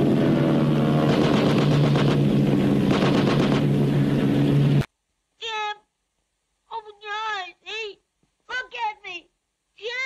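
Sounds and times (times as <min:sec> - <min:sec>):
biplane engine droning: 0:00.0 - 0:04.9
machine-gun fire bursts: 0:01.0 - 0:03.8.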